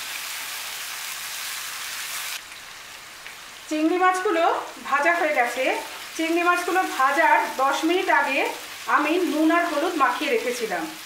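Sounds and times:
prawns sizzling in oil: 0.0s - 11.0s.

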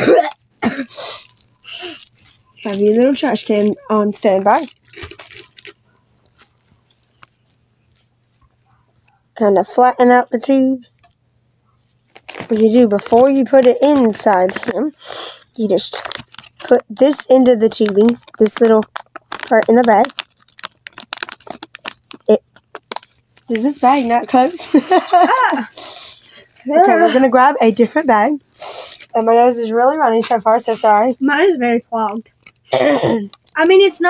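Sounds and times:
plastic packaging crinkling: 0.6s - 8.1s, 12.0s - 31.4s, 32.0s - 34.0s.

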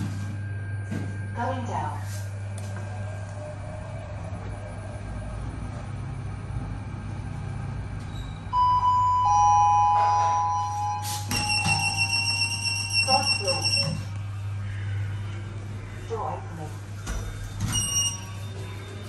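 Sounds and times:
lift hum: 0.0s - 19.0s
electronic signal tones: 8.5s - 14.2s.

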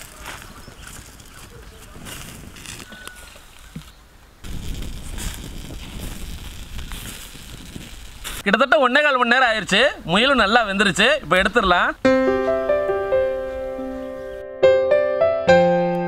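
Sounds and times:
low outdoor background noise: 0.0s - 5.0s, 7.9s - 14.4s
music with wavering melody: 12.1s - 16.0s.

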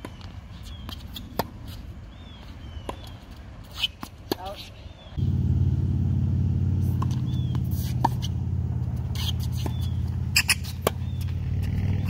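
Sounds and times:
sneaker squeaks: 0.0s - 4.9s, 6.8s - 12.0s
steady low drone: 5.2s - 12.0s
tennis ball struck by racket: 6.7s - 11.7s.

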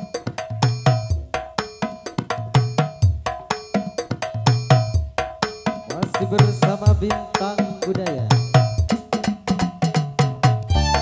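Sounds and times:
hand drums: 0.0s - 11.0s.

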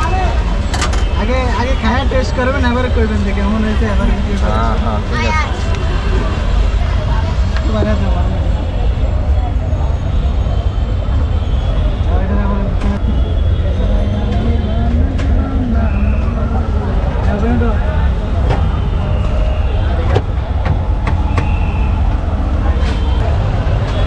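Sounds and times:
people talking: 0.0s - 21.5s
street rumble: 0.0s - 24.0s
background voices: 12.4s - 18.6s.

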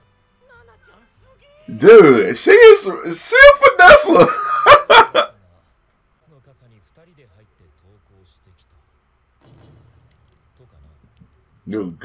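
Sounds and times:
man laughing in gasping bursts: 3.4s - 5.3s.

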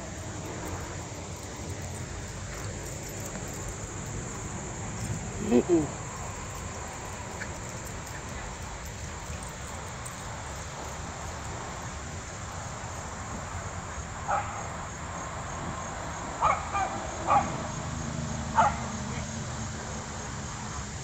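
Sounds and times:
insects chirring: 0.0s - 21.0s
dogs barking: 14.3s - 14.7s, 16.4s - 17.7s, 18.5s - 19.0s.

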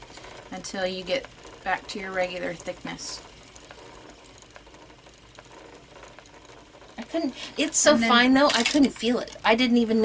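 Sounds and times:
soft ticks of spinning wheel: 0.0s - 10.0s
spinning wheel whirring: 0.0s - 10.0s.

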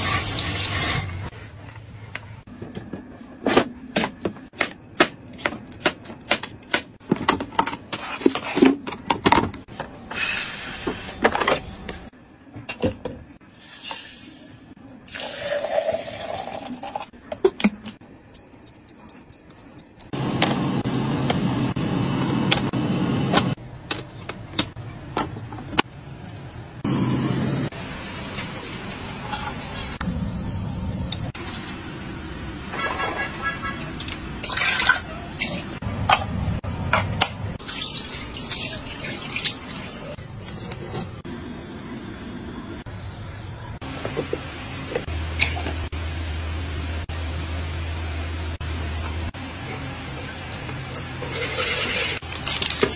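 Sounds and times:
water splashing at sink: 37.6s - 40.2s.

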